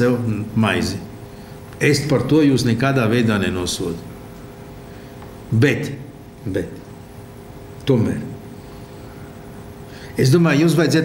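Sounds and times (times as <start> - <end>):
faint room hum: 0.0 - 11.0
man speaking: 1.8 - 4.1.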